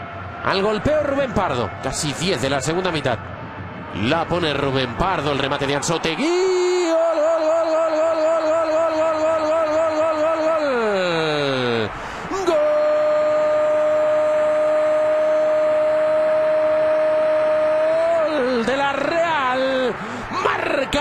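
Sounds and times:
stadium crowd cheering: 0.0 - 21.0.

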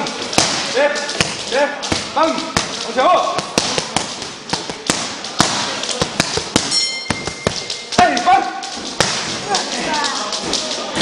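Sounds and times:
boxing gloves hitting mitts: 0.3 - 8.1, 8.8 - 9.6.

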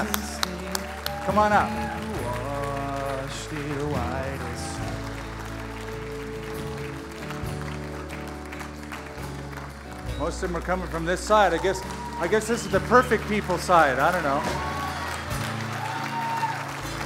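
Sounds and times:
person singing: 0.0 - 5.4
keyboard chords: 0.0 - 17.0
light applause: 0.0 - 17.0.

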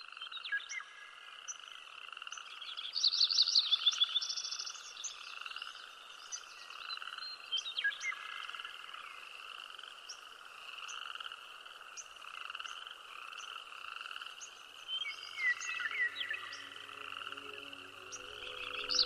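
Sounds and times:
frogs trilling: 0.0 - 19.0.

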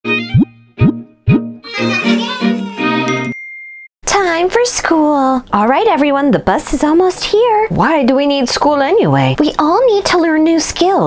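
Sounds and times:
musical logo jingle: 0.1 - 3.4
high ringing ding: 3.1 - 3.9.

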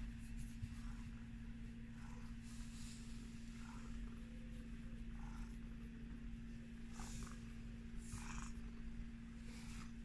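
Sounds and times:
cat purring: 0.6 - 10.0.

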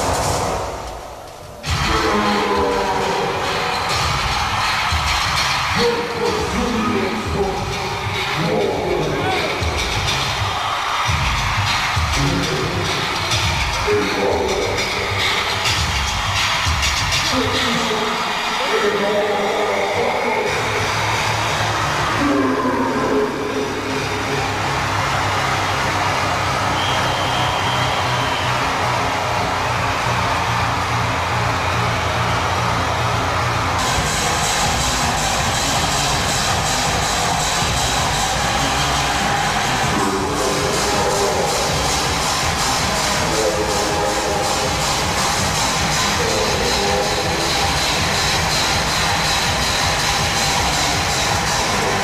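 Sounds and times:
hardcore techno dance music: 0.0 - 52.0.

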